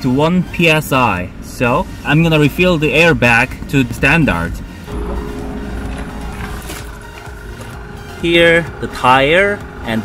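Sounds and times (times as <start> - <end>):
background music: 0.0 - 10.0
low steady rumble: 0.6 - 10.0.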